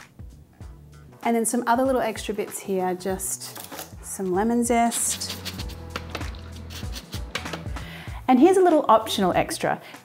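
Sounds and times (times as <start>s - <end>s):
soft background music: 0.0s - 10.0s
grater scraping lemon rind: 4.9s - 7.4s.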